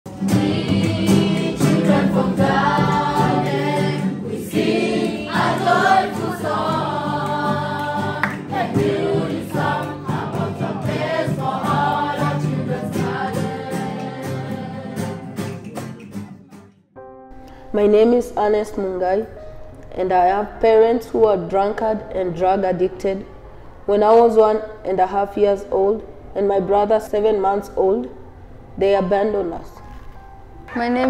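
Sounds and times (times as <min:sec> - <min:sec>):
choir singing gospel song: 0:00.1 - 0:15.5.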